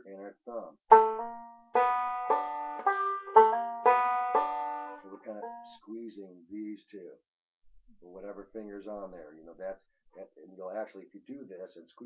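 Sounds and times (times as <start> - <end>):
banjo plucked slowly: 0.9 - 6.0.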